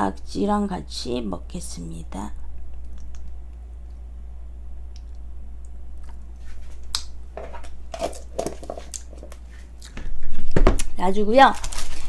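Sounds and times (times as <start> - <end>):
soft wet squishing: 4.9 - 10.0.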